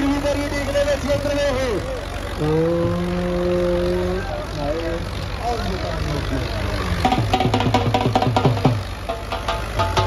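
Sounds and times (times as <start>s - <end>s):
tractor engine rumbling: 0.0s - 10.0s.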